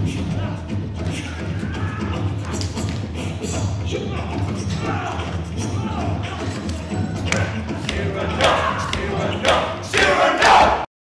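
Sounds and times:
men shouting and yelling: 0:00.0 - 0:02.7, 0:03.8 - 0:10.9.

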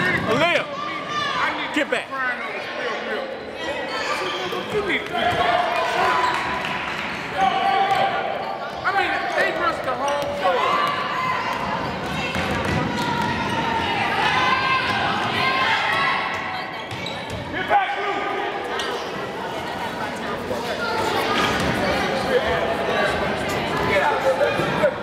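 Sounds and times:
voices shouting in gym: 0:00.0 - 0:19.4.

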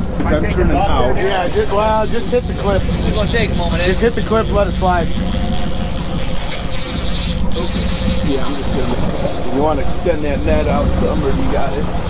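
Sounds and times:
boat engine humming: 0:01.1 - 0:12.0.

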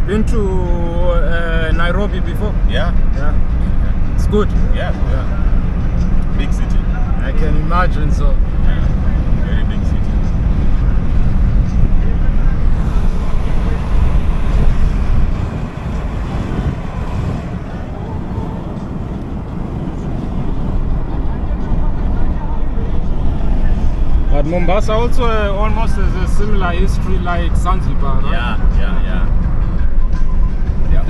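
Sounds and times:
road rumble: 0:00.0 - 0:31.0
wind buffeting microphone: 0:08.3 - 0:31.0.

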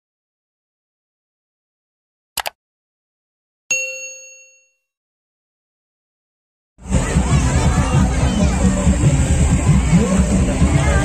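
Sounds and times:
notification bell ding: 0:03.7 - 0:04.9.

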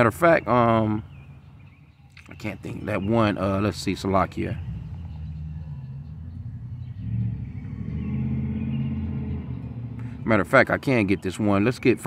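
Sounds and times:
car engine running: 0:03.6 - 0:11.0.

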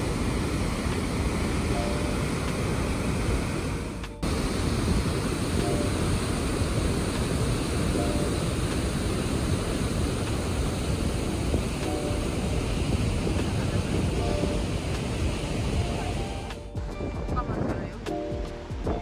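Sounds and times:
waterfall rushing: 0:00.0 - 0:16.6.

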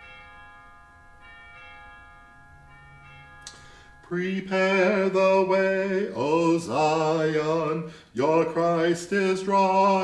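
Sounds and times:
bells ringing softly: 0:00.0 - 0:06.2.

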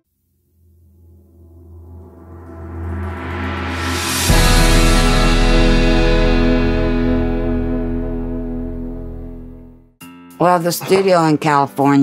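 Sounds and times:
deep low drone: 0:00.6 - 0:09.9.

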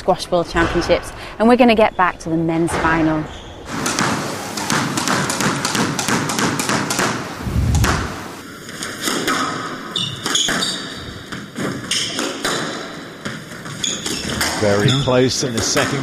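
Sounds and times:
shoe squeaks on court floor: 0:10.0 - 0:11.0, 0:11.8 - 0:12.2, 0:13.7 - 0:15.1.

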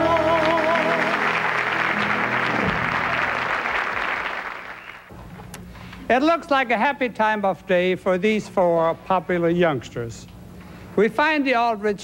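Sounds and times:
studio audience applauding: 0:00.0 - 0:05.1.

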